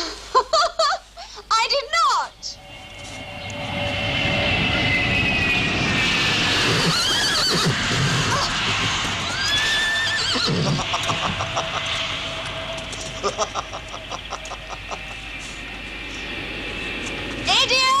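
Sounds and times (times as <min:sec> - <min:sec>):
jet aircraft roaring overhead: 0:02.2 - 0:18.0
horse whinnying: 0:06.6 - 0:10.9.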